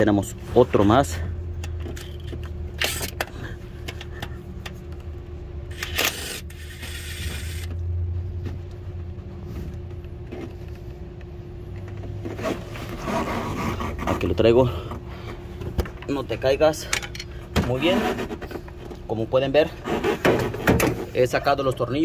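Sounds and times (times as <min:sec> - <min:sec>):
steady low hum: 0:00.0 - 0:22.0
rustling scrape: 0:12.3 - 0:14.5, 0:17.8 - 0:18.7, 0:19.7 - 0:21.2.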